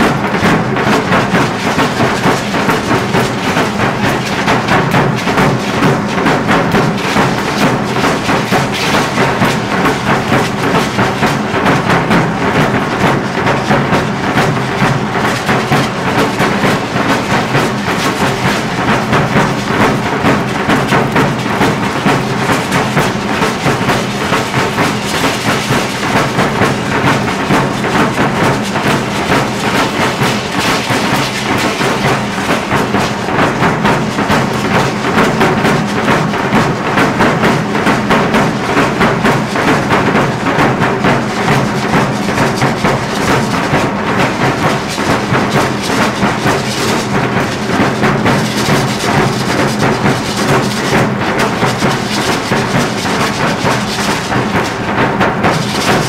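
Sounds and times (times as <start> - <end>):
marching drums: 0.0 - 56.0.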